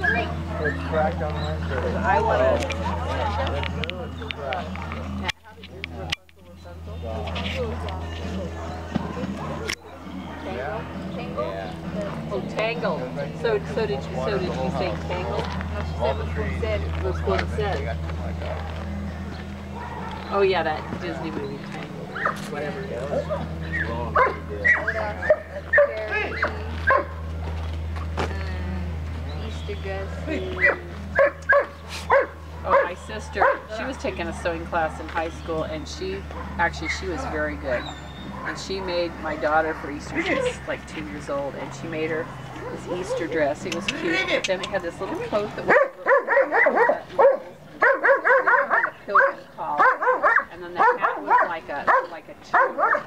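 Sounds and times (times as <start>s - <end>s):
dog whining and yipping: 0.0s - 1.6s
dog barking rapidly: 22.1s - 22.5s, 23.3s - 27.3s, 30.6s - 33.7s, 45.6s - 53.0s.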